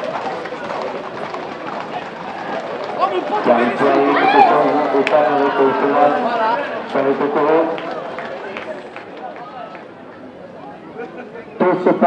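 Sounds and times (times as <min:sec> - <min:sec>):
footsteps running on pavement: 0:00.0 - 0:09.9
crowd voices calling and chattering: 0:00.0 - 0:12.0.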